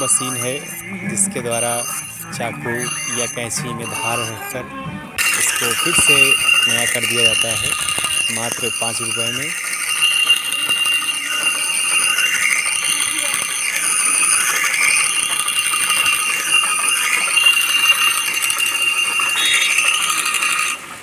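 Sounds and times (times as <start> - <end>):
knife grinding on stone: 5.2 - 20.8.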